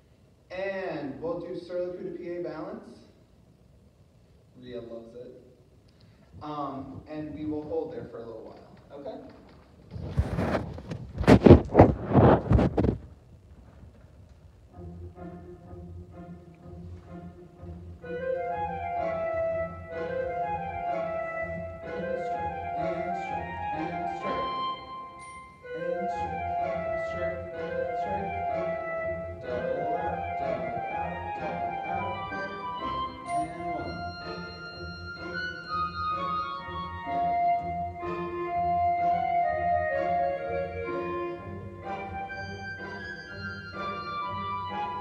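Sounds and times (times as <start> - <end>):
classical instrumental music: 13.9 - 45.0.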